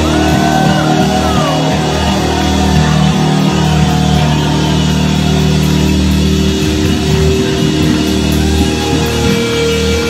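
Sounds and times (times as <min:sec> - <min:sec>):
loud electric guitar: 0:00.0 - 0:10.0.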